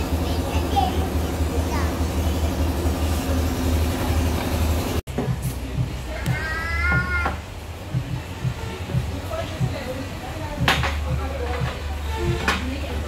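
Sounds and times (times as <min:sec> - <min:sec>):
low rhythmic thumping: 0:04.9 - 0:13.0
child squealing: 0:06.3 - 0:07.4.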